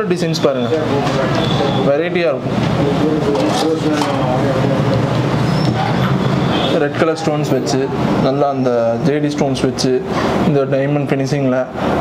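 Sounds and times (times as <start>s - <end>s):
man talking: 0.0s - 5.3s, 6.7s - 11.8s.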